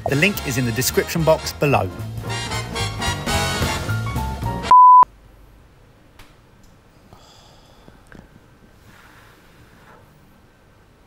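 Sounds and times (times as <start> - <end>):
background music: 0.0 - 4.7
electronic beep: 4.7 - 5.0.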